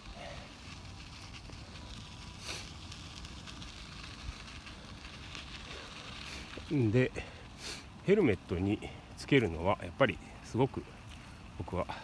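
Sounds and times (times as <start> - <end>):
bicycle tyres rolling on gravel: 0.0 - 12.0.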